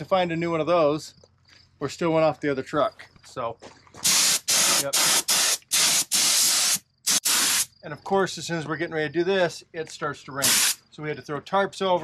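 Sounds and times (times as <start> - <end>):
air spray gun bursts: 4.0 - 7.7, 10.4 - 10.8.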